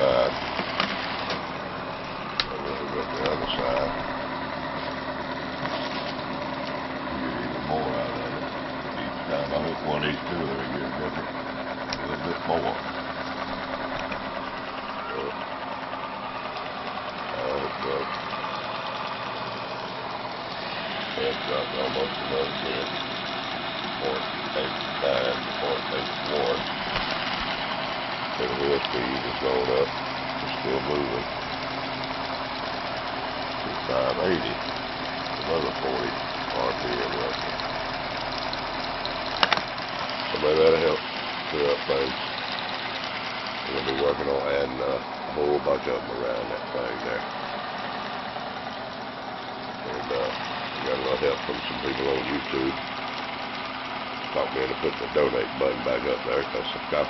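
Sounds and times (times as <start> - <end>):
motor whirring: 0.0 - 57.0.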